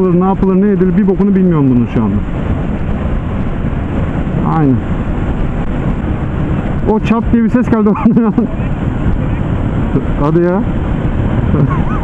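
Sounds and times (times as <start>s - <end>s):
wind rush on microphone: 0.0s - 12.0s.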